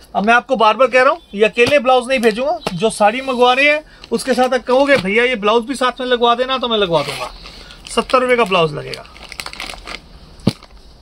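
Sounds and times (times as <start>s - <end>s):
plastic pouch crinkling: 6.8s - 10.8s.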